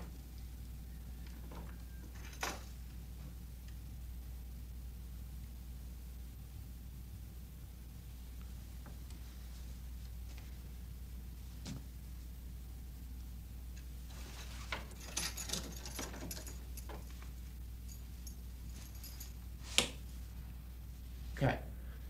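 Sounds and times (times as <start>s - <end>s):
steady low hum: 0.0s - 22.0s
metallic clicks and jingling: 14.7s - 19.4s.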